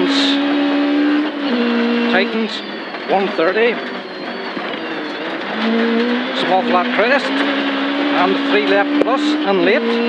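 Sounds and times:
car engine at high revs: 0.0s - 10.0s.

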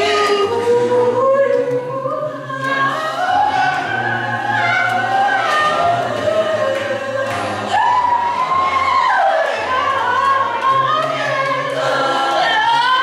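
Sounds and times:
gospel choir singing in harmony: 0.0s - 13.0s.

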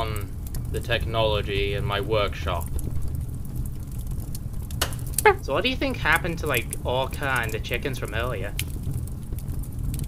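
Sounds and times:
faint crackles: 0.0s - 10.0s
low rumble: 0.0s - 10.0s.

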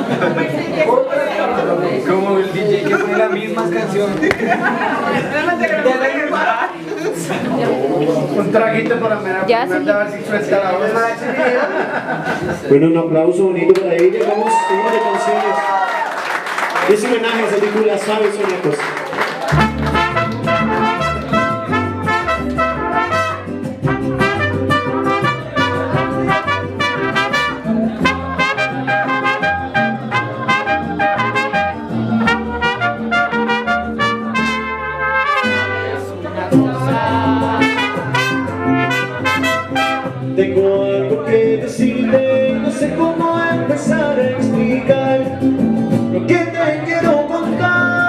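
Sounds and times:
mariachi band playing: 1.4s - 11.1s, 16.9s - 48.0s
trumpets playing melody: 19.5s - 36.1s, 37.6s - 40.3s
bass line: 19.5s - 46.3s.

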